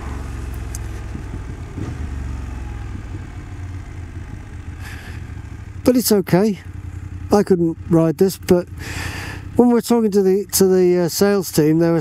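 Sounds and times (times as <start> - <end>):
motorcycle engine low rumble: 0.0 - 12.0.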